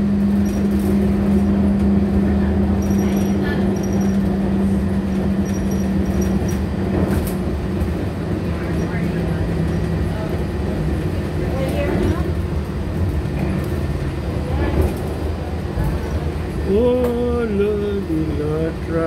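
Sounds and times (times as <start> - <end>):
monorail rumble: 0.0 - 19.0.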